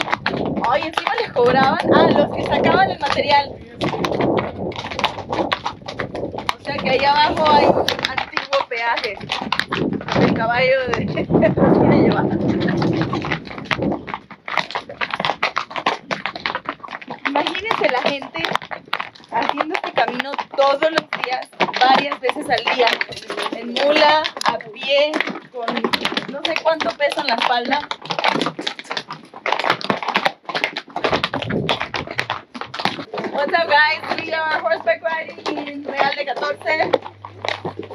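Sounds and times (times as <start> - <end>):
low rumble: 0.0 - 8.4, 9.1 - 14.2, 31.2 - 32.4
hooves clopping on cobblestones: 0.0 - 37.9.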